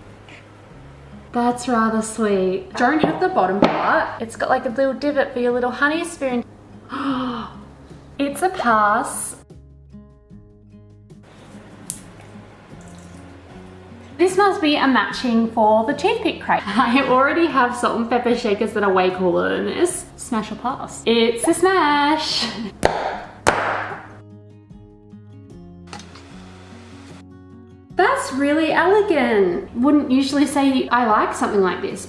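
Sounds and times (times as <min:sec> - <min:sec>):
quiet background music: 0:00.0 - 0:32.0
liquid clay pouring from a jug: 0:11.8 - 0:13.3.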